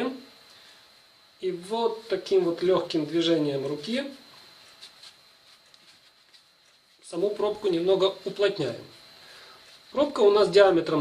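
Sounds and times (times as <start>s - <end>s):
cotton wool rustling: 4.4s - 10.6s.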